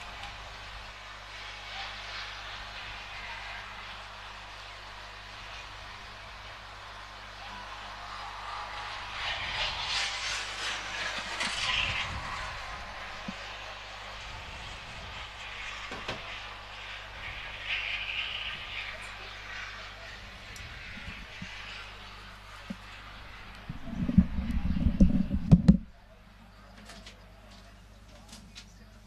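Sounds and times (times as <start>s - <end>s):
voices in background: 0.2s - 29.0s.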